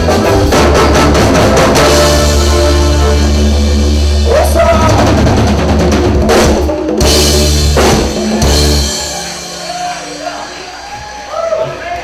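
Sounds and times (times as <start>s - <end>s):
held bass note: 0.0s - 10.8s
drum kit and cymbal hits: 0.0s - 11.9s.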